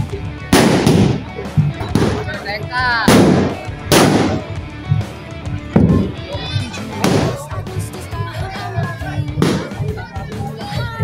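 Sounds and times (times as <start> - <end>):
bamboo cannon blasts: 0.5 - 2.4, 3.0 - 4.6, 7.0 - 7.5, 9.4 - 9.8.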